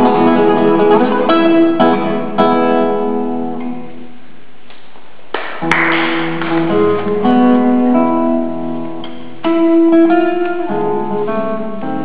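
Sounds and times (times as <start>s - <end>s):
classical guitar chords: 0.0s - 4.6s, 5.4s - 12.0s.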